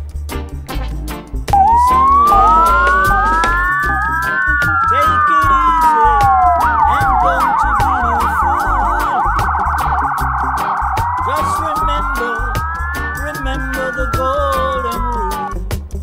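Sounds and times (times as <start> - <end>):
heavy bass line: 0.5 - 16.0
dub siren sweeps and wail: 1.6 - 15.6.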